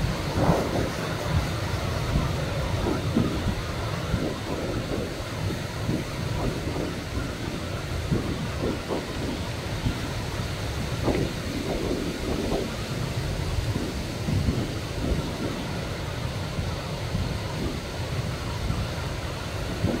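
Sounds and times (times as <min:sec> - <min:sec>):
breaking surf: 0:00.0 - 0:20.0
wind buffeting microphone: 0:00.0 - 0:20.0.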